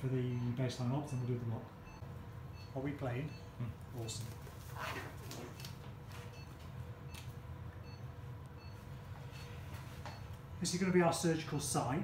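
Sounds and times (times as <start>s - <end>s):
patient monitor beep: 0.0s - 10.7s
room hum: 0.0s - 12.0s.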